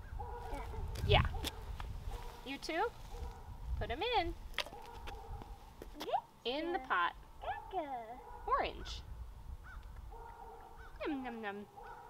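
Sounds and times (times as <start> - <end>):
woman speaking: 1.0 - 1.4, 2.5 - 2.9, 6.5 - 7.6, 8.5 - 9.0, 11.0 - 11.7.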